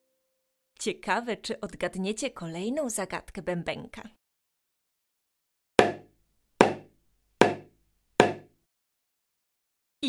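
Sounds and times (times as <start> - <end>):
small drum strikes with beater: 5.8 - 8.5.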